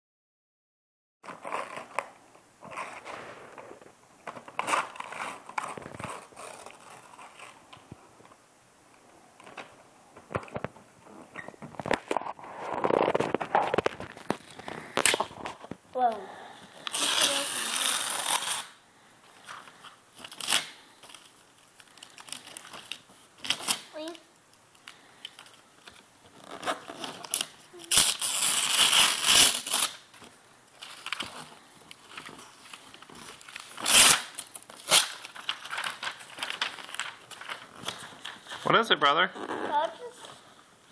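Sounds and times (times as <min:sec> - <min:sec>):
wrapping paper tearing and crinkling: 0:01.2 - 0:07.8, 0:11.8 - 0:15.7, 0:16.8 - 0:40.5.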